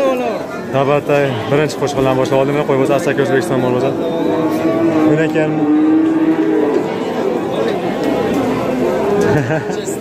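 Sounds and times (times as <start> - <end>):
livestock market hubbub: 0.0 - 10.0
cow mooing: 2.8 - 7.5.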